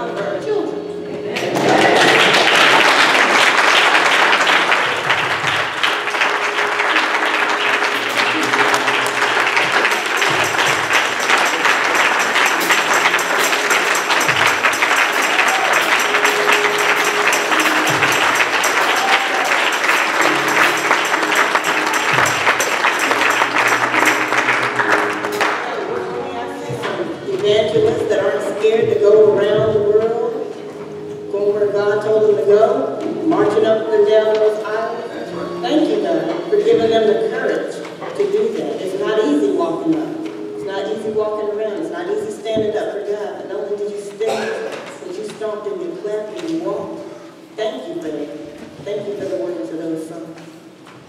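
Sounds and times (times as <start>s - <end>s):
congregation clapping: 1.3s - 26.1s, 44.1s - 45.5s.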